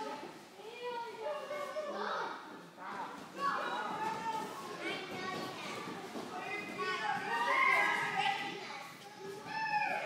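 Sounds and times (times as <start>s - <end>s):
children chattering and playing: 0.0s - 10.0s.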